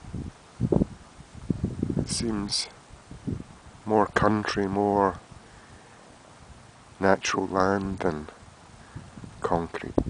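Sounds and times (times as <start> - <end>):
wind buffeting microphone: 0.0 - 5.5, 7.6 - 10.0.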